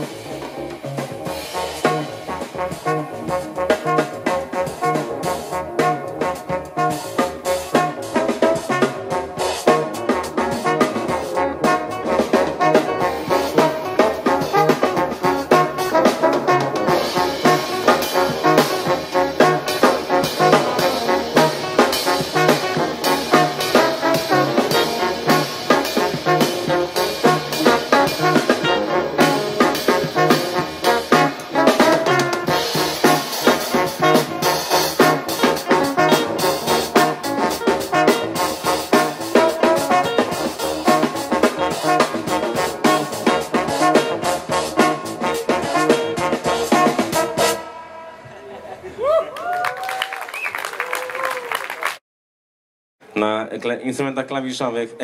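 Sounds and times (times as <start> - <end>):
jazz band playing: 0.0 - 48.0
trombone lead: 0.0 - 48.2.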